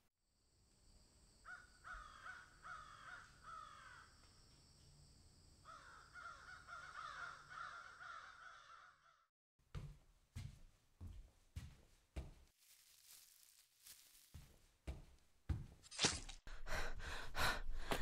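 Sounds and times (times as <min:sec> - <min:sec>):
crows cawing: 0:01.4 - 0:04.2, 0:05.6 - 0:09.3.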